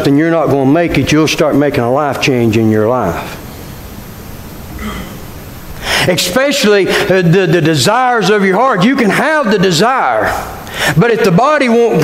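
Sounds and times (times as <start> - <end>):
man preaching: 0.0 - 3.3, 6.0 - 12.0
room noise through sound system: 0.0 - 12.0
man inhaling: 5.8 - 6.1, 10.6 - 11.0.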